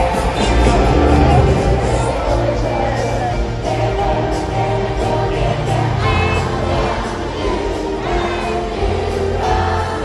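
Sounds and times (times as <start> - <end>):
amplified pop song: 0.0 - 10.0
children's choir singing: 0.0 - 10.0.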